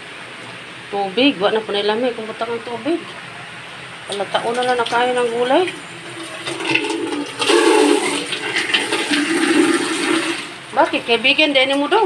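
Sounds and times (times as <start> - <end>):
soup boiling and bubbling: 5.8 - 10.6.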